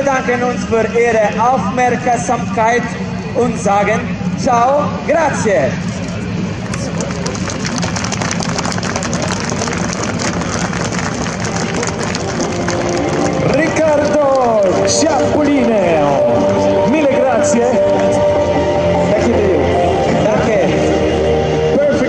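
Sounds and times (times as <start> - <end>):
crackling jet roar: 0.0 - 22.0
steady jet whine: 0.0 - 22.0.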